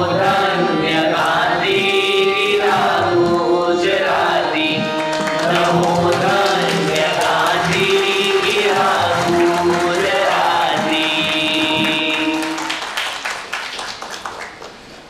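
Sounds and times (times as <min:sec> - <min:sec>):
song with long held sung notes: 0:00.0 - 0:13.0.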